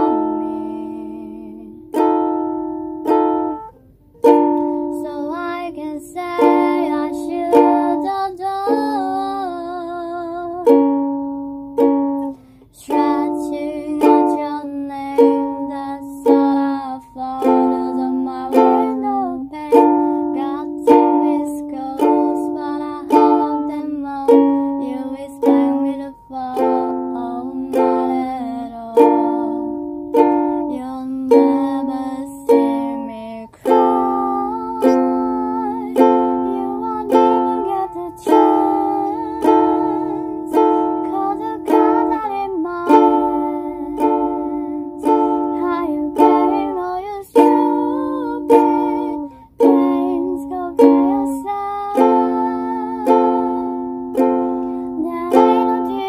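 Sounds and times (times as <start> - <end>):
ukulele strumming chords: 0.0 - 56.0.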